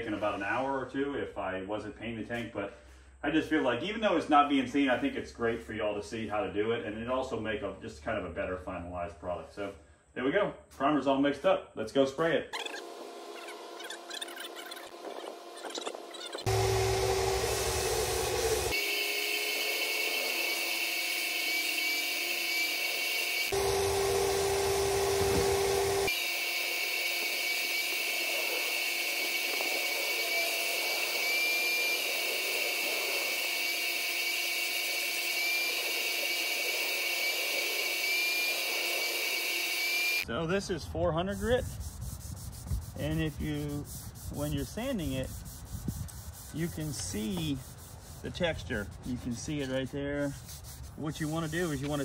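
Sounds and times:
spray turbine whining: 12.6 - 40.2.

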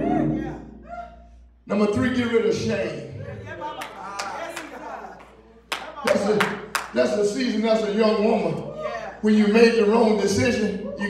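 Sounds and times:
sharp hand claps: 3.8 - 7.0.

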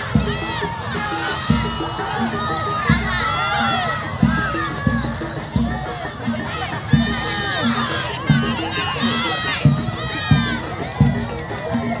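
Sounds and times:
children shouting: 0.0 - 12.0
low drum beat: 0.0 - 12.0.

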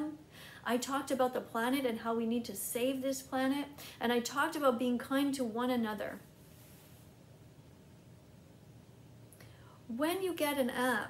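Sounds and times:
woman speaking: 0.0 - 6.2, 9.9 - 11.0
faint low hum: 0.0 - 11.0
short breath: 0.3 - 0.6.

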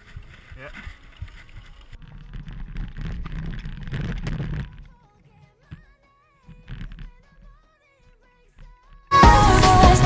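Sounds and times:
bike knocking and rattling: 0.0 - 7.7
tyres on dirt: 0.0 - 10.0.

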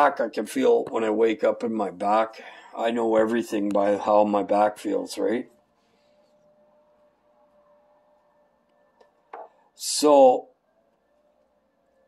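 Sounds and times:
man speaking: 0.0 - 5.5, 9.8 - 10.5
faint steady hum: 0.0 - 12.0.

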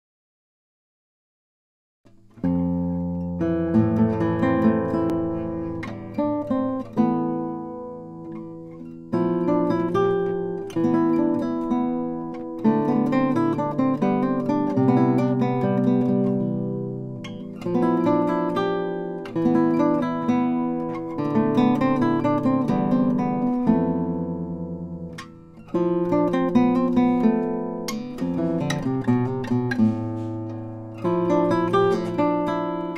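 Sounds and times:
classical guitar playing: 2.1 - 32.9.

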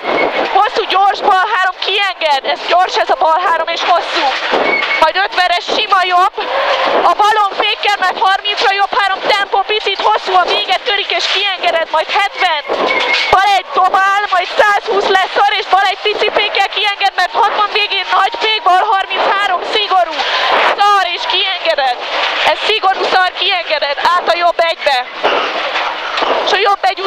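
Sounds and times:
road noise: 0.0 - 27.0.

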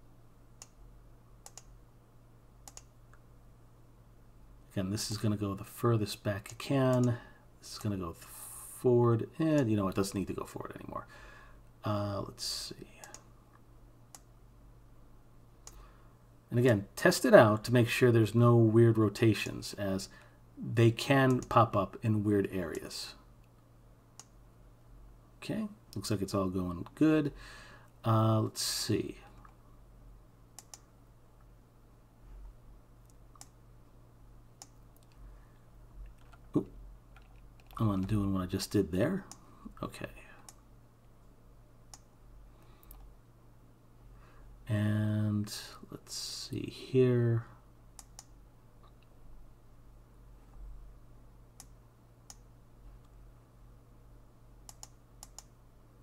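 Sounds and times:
low steady hum: 0.0 - 56.0
computer mouse clicks: 1.4 - 1.8, 2.6 - 3.2, 13.0 - 13.3, 21.3 - 21.6, 30.6 - 30.9, 33.0 - 33.6, 48.0 - 49.1, 51.6 - 53.2, 54.6 - 55.6.

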